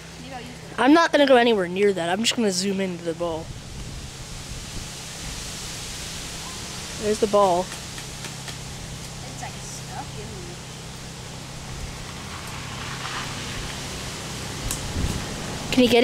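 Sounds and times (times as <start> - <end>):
steady low hum: 0.0 - 16.0
person speaking: 0.2 - 3.4.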